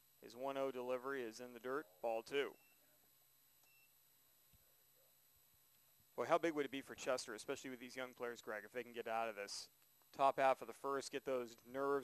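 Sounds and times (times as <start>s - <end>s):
faint high beep: 2.5s - 2.9s, 3.6s - 4.0s.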